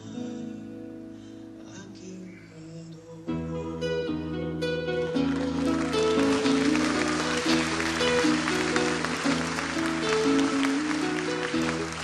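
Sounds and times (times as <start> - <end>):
acoustic guitar chords: 0.0 - 12.0
audience applauding: 5.2 - 12.0.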